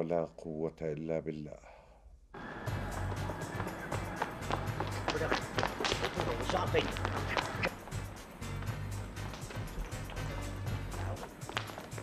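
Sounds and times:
running footsteps on pavement: 2.7s - 12.0s.

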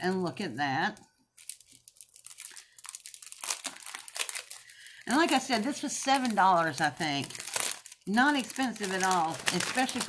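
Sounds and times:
paper and packaging crinkling: 0.0s - 10.0s.

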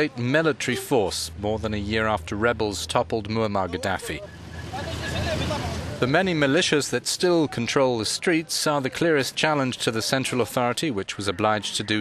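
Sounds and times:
road traffic: 0.0s - 6.7s.

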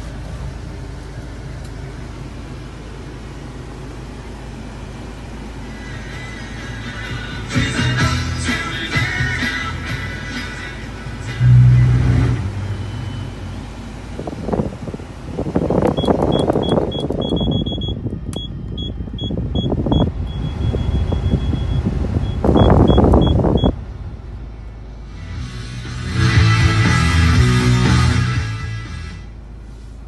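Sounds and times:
air blower rushing: 8.5s - 16.9s
brief low hum: 11.2s - 14.4s.

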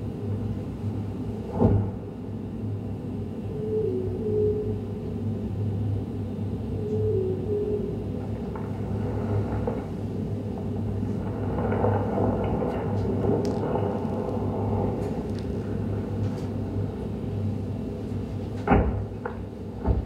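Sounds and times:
low rumble and hum: 0.0s - 20.0s.

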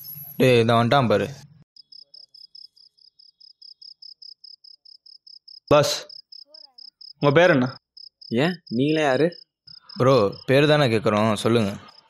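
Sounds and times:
cricket chirping: 1.8s - 12.0s.

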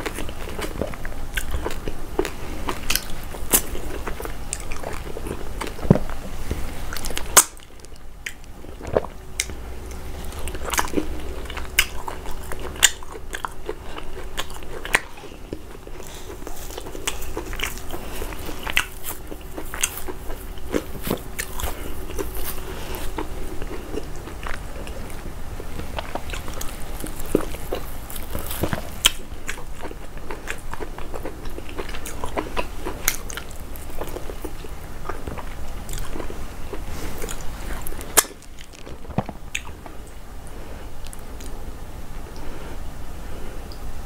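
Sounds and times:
close chewing: 0.0s - 41.6s.

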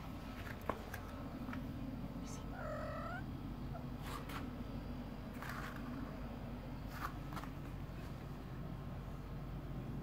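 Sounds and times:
low background hum: 0.0s - 10.0s
cat meowing: 2.3s - 3.9s.

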